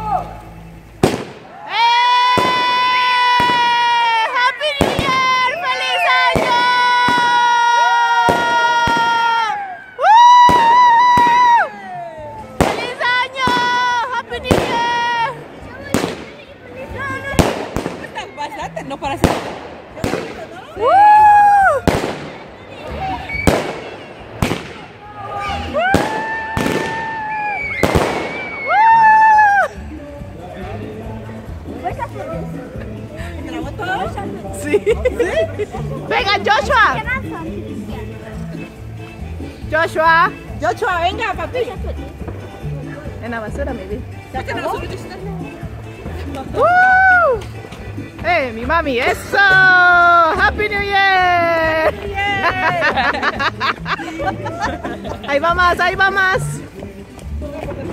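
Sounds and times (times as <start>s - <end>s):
firework bangs and crackles: 0.3s - 11.7s, 12.4s - 29.8s
shrill firework whistles: 23.2s - 24.6s, 25.5s - 29.5s.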